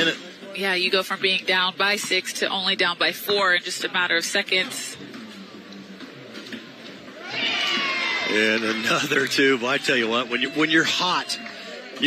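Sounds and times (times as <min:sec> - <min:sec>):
low murmur of spectators: 0:00.0 - 0:12.0.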